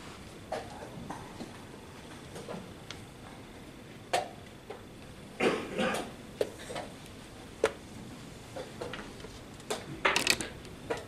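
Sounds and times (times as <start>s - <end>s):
chess pieces clacking: 10.1s - 10.6s.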